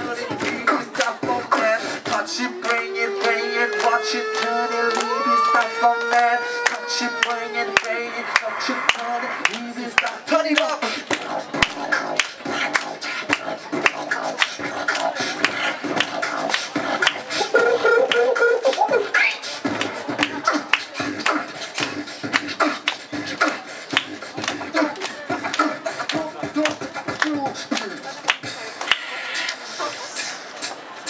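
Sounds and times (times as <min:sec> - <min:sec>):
beatboxing into microphones: 0:00.0 - 0:31.0
held humming tone sliding upward: 0:02.5 - 0:07.7.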